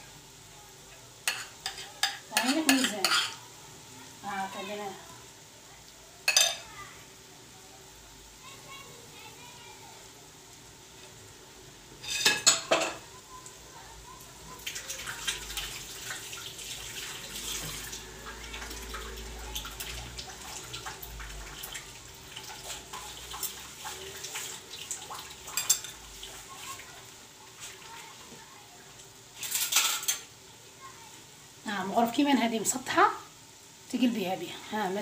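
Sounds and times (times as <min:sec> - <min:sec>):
oil sizzling in frying pan: 0:00.0 - 0:35.0.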